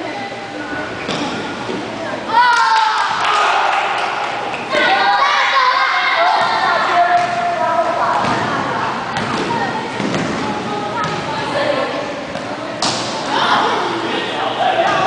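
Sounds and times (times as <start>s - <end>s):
children calling out: 4.7s - 8.0s.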